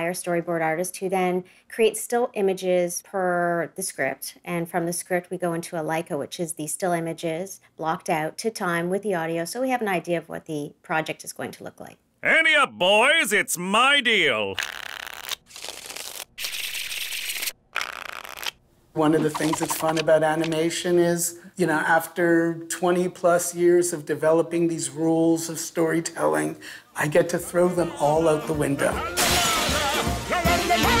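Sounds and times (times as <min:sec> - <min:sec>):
playing cards being shuffled: 0:14.5 - 0:20.6.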